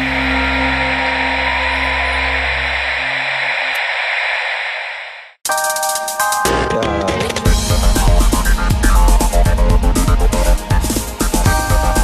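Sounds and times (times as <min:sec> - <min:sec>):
hiss-like noise wash: 0:00.0 - 0:05.4
low synth drone: 0:00.0 - 0:05.4.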